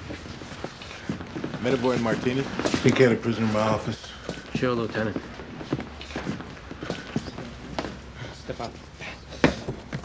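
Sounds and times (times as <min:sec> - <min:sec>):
footsteps and shuffling: 0:00.0 - 0:10.0.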